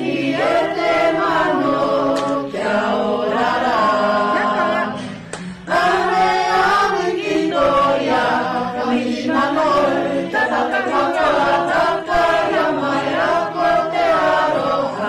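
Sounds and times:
group singing in harmony: 0:00.0 - 0:15.0.

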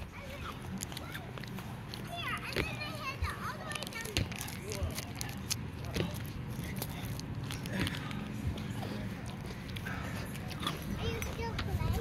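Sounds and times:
children calling and playing: 0:00.0 - 0:12.0.

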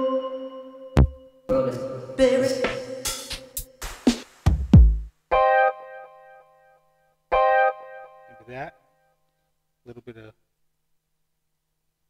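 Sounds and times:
sampled chord stabs: 0:02.2 - 0:06.4.

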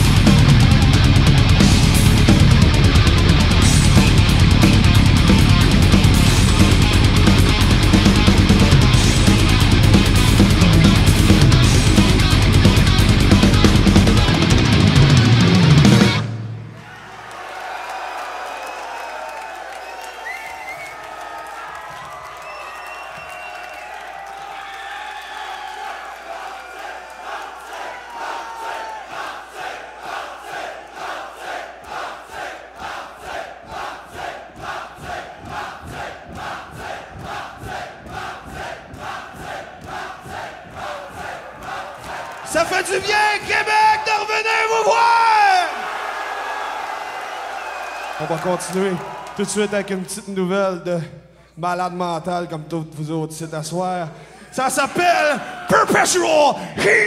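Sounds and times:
crowd cheering and whistling: 0:14.2 - 0:32.1, 0:37.3 - 0:50.3
crowd rhythmic clapping: 0:16.7 - 0:43.6, 0:46.7 - 0:50.2.

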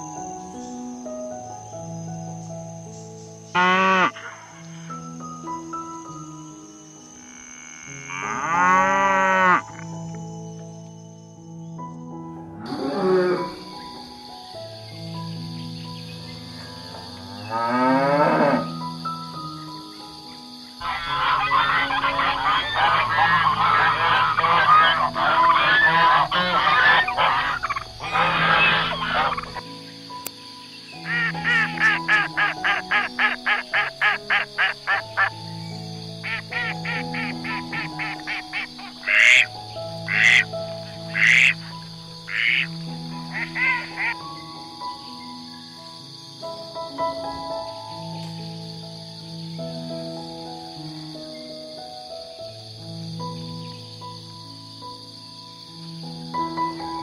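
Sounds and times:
calm background music: 0:00.0 - 0:57.0
cow mooing: 0:03.6 - 0:04.2, 0:07.2 - 0:09.6, 0:16.7 - 0:18.6
ducks quacking: 0:20.8 - 0:29.6, 0:31.0 - 0:35.3, 0:36.2 - 0:39.5, 0:40.1 - 0:41.7, 0:42.3 - 0:42.7, 0:43.3 - 0:44.2
geese honking and cackling: 0:20.8 - 0:29.6, 0:31.0 - 0:35.4, 0:36.2 - 0:39.5, 0:40.1 - 0:44.2.

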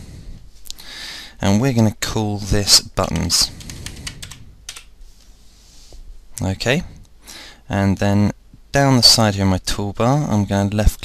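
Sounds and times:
computer keyboard typing: 0:03.0 - 0:04.9.

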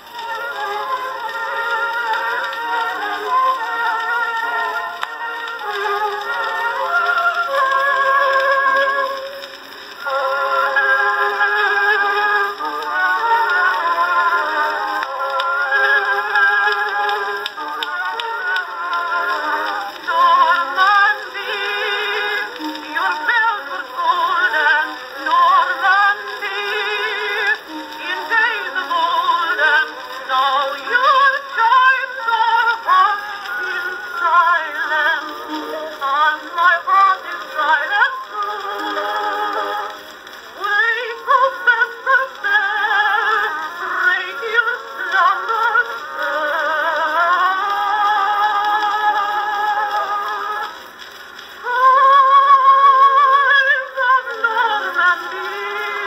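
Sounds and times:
woman singing with vibrato on phonograph: 0:00.0 - 0:56.0.

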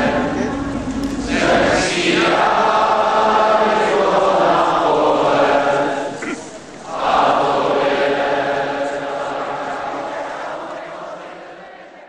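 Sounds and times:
many voices singing held notes: 0:00.0 - 0:12.0.

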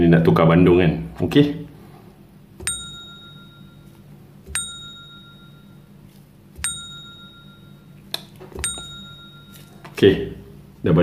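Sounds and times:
spoon clinking glass jar: 0:06.6 - 0:10.0.

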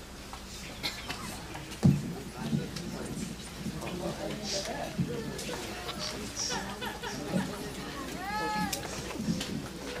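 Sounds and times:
low murmuring voices: 0:00.0 - 0:10.0.

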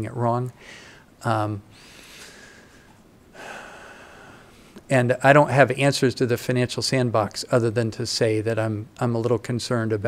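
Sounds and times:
man speaking: 0:00.0 - 0:00.6, 0:01.2 - 0:01.7, 0:04.9 - 0:10.0
man breathing in: 0:00.6 - 0:01.1, 0:01.7 - 0:04.8.

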